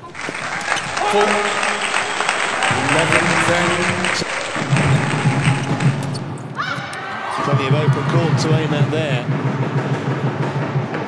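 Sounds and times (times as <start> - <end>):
footwork thuds: 0.0 - 6.6.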